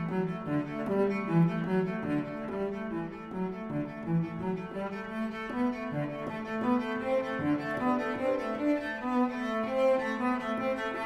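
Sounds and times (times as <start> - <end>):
instrumental music melody: 0.0 - 11.0.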